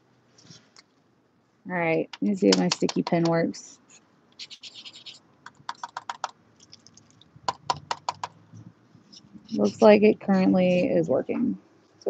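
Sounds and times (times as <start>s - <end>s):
pen tip scratching on paper: 4.4s - 6.3s.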